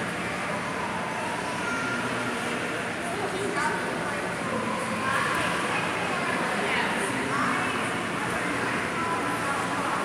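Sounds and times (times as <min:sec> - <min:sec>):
echoing indoor pool hall ambience: 0:00.0 - 0:10.0
faint distant voices: 0:00.0 - 0:10.0.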